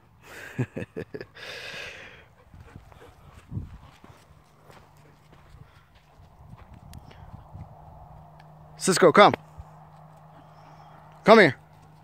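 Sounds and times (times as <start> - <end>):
footfalls on packed dirt: 2.6 - 8.4.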